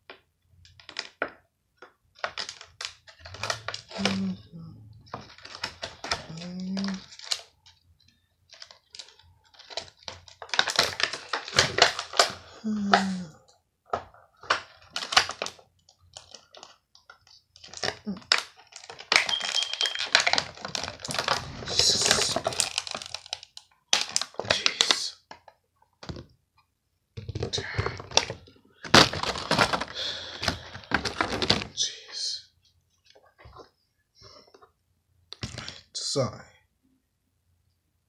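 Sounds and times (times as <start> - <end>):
plastic scraping and rubbing: 19.9 - 24.4.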